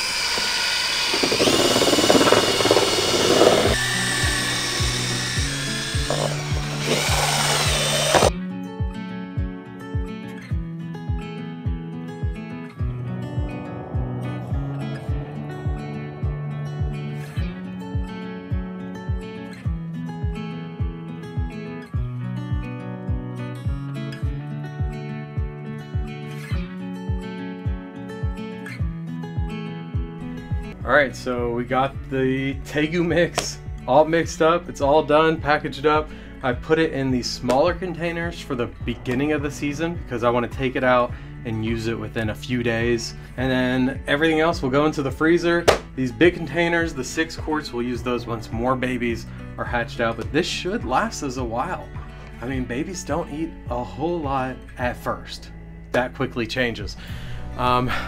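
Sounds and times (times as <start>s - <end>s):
electric drill mixing meat: 0.0s - 8.3s
background music with beat: 3.8s - 36.2s.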